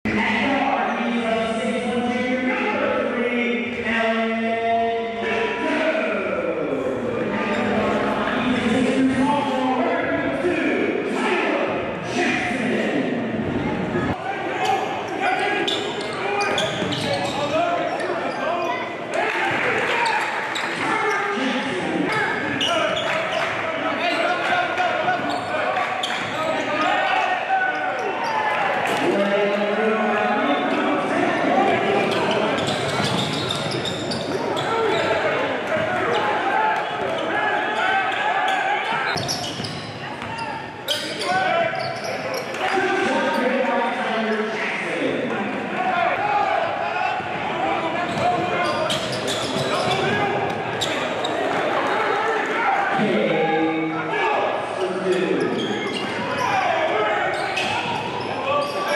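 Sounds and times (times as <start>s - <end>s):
echoing hubbub of voices: 0.0s - 58.9s.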